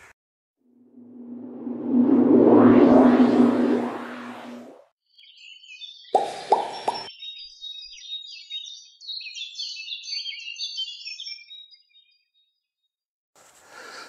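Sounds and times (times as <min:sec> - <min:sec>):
small birds chirping: 0:05.1 - 0:12.5.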